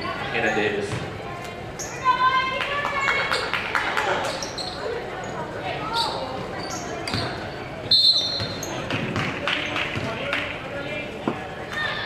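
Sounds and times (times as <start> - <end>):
voices: 0.0 - 12.0
sneakers squeaking on hardwood: 5.9 - 9.4
basketball bouncing: 8.4 - 10.2.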